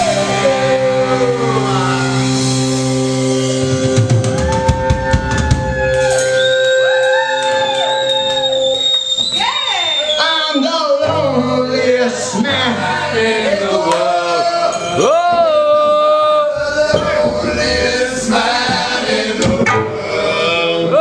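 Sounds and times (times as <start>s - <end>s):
ringing electric guitar notes: 0.0s - 8.8s
drum and cymbal hits: 2.1s - 6.3s.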